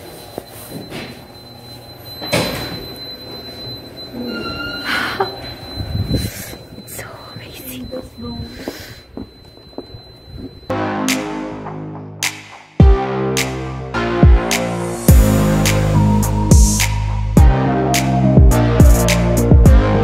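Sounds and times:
steady high tone: 0.7s - 12.2s, 12.8s - 20.0s
music: 10.7s - 20.0s.

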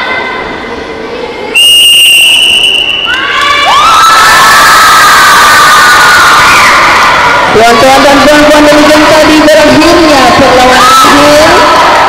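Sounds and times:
long whistle blast: 1.6s - 3.1s
children shouting and cheering: 3.0s - 7.6s, 11.0s - 12.0s.

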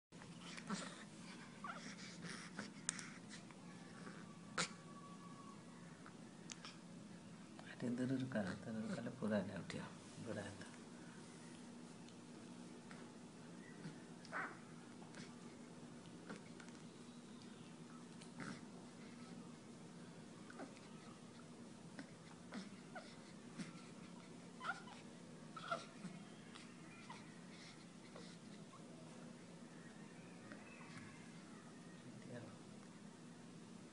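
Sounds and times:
faint low hum: 0.2s - 33.9s
baby squeaking and cooing: 22.0s - 25.0s, 25.6s - 28.4s.

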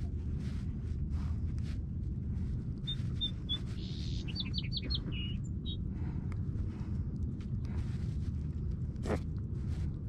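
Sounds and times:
steady low rumble: 0.0s - 10.0s
small bird singing: 2.8s - 5.9s.

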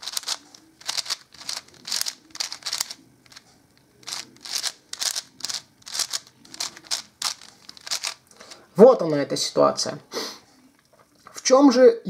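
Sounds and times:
puzzle cube clicking: 0.0s - 8.2s.

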